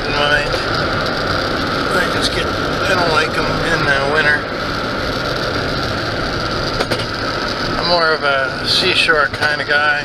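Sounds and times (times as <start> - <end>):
car driving from inside cabin: 0.0 - 10.0.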